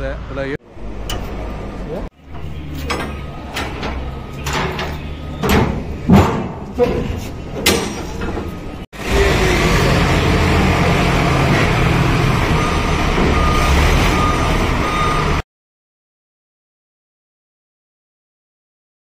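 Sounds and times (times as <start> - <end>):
voices: 0.0 - 11.8
forklift engines running: 0.0 - 15.4
knocks: 2.8 - 8.6.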